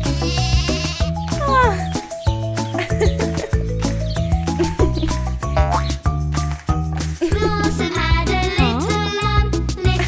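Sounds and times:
cartoon lamb bleating: 0.0s - 1.8s
children's song instrumental: 0.0s - 10.0s.

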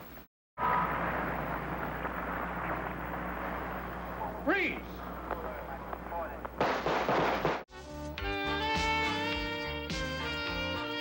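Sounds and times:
gunfire volley: 6.6s - 7.7s.

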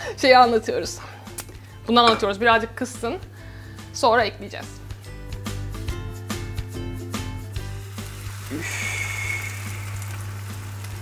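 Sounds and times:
batter sizzling in hot oil: 7.6s - 11.0s.

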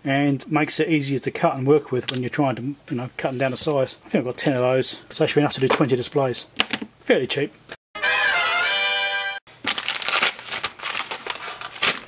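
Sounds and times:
plastic bag crinkling and tearing: 9.6s - 12.0s.

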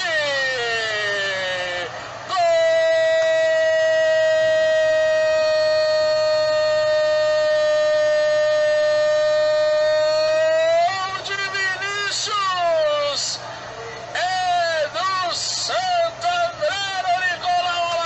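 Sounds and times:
commentator goal cry: 0.0s - 13.4s, 14.2s - 18.0s.

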